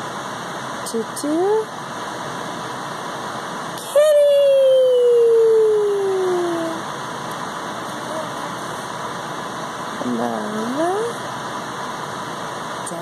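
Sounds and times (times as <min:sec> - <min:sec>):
electric fan rushing: 0:00.0 - 0:13.0.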